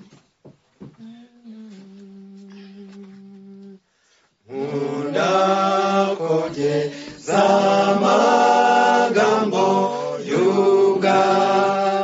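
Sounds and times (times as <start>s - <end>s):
person humming a note: 1.0s - 3.8s
group singing a hymn: 4.4s - 12.0s.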